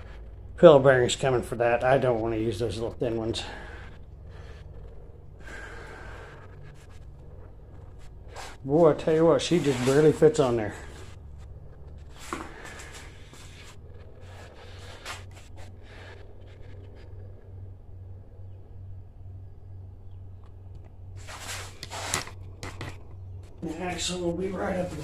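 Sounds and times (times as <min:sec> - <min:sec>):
rustling and scraping handling: 0:00.0 - 0:18.5, 0:20.8 - 0:25.0
low pulsing hum: 0:00.0 - 0:25.0.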